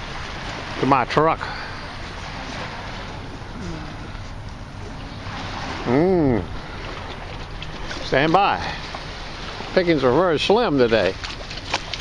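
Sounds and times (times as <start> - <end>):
water moving in shallows: 0.0 - 12.0.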